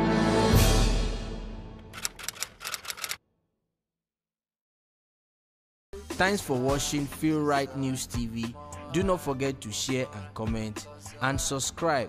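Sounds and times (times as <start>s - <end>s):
typewriter key clicks: 2.0s - 3.2s.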